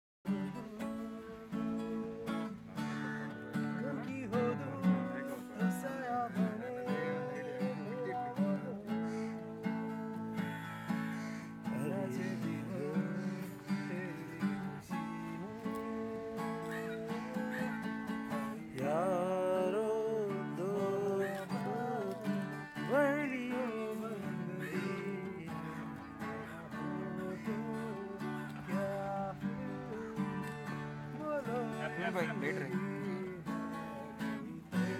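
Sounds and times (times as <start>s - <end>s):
man singing: 0.2s - 34.9s
acoustic guitar strumming: 0.3s - 34.9s.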